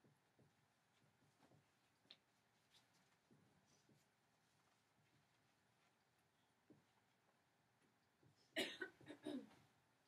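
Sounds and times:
person coughing: 8.6 - 9.6.

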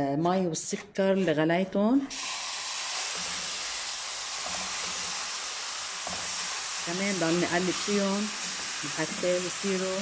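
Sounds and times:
syrup hissing in hot pan: 2.1 - 10.0.

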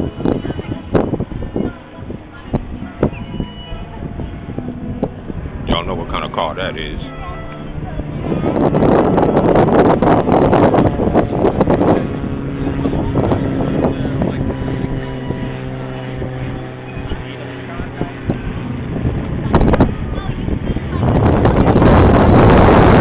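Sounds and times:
low motor hum: 0.0 - 23.0
wind buffeting microphone: 0.0 - 23.0.

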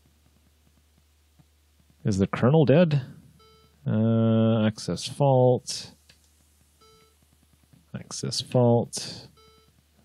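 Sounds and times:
faint buzzy computer beep: 3.4 - 4.6, 6.7 - 7.3, 8.0 - 9.8.

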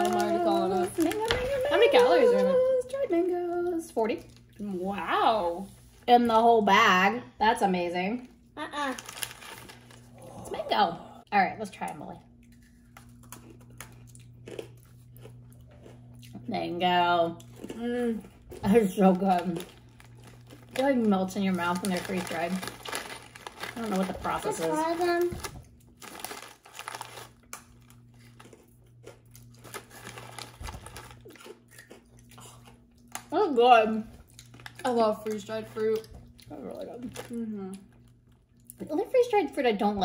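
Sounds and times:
plastic pouch crinkling: 0.0 - 2.4, 8.9 - 10.2, 19.0 - 28.5, 29.5 - 31.5
crunching and chewing: 8.8 - 10.4, 12.2 - 16.5, 17.3 - 33.4, 34.1 - 38.8.

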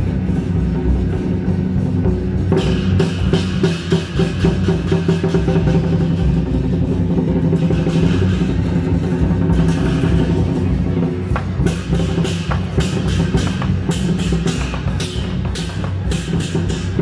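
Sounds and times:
clashing cymbals: 0.0 - 17.0
large drum beating: 0.0 - 17.0.

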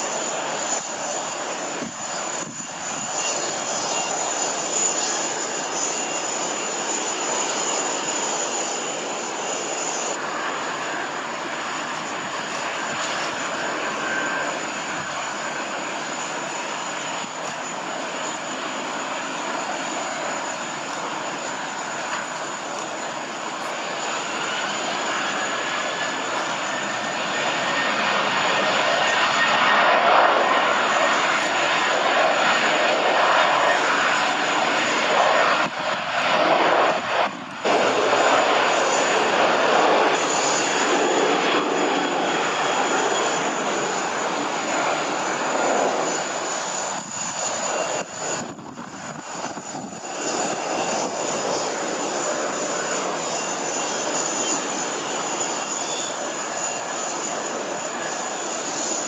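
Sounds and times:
jet engines roaring: 0.0 - 59.0.

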